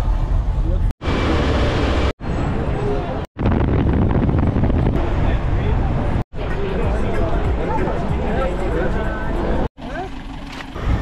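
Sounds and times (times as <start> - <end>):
market crowd chatter: 5.0 - 11.0.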